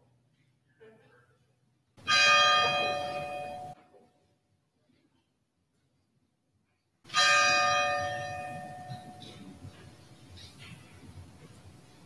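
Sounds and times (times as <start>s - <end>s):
bell ringing: 2.0s - 3.8s, 7.1s - 9.4s.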